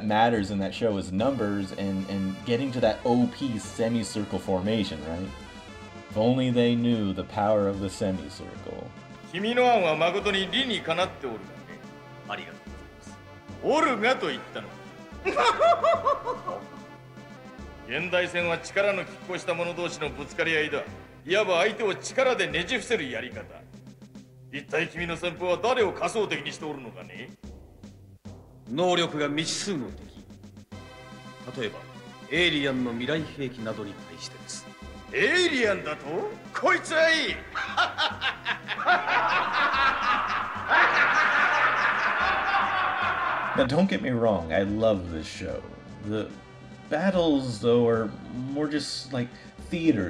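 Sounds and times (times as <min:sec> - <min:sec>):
background music: 0:00.0 - 0:50.0
person laughing: 0:15.2 - 0:16.8, 0:37.5 - 0:43.6.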